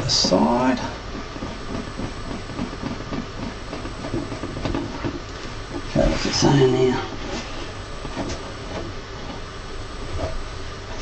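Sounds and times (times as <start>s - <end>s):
plastic rubbing and handling: 0.0s - 11.0s
steady background hiss: 0.0s - 11.0s.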